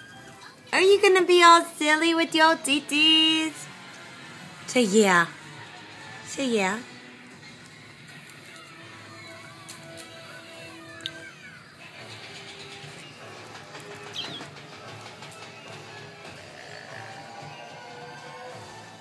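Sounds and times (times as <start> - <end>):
quiet background music: 0.0 - 19.0.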